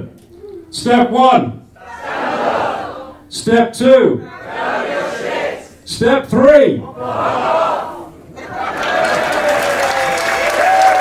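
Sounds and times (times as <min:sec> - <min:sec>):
audience applauding and cheering: 0:08.4 - 0:11.0
long held shout: 0:08.6 - 0:11.0.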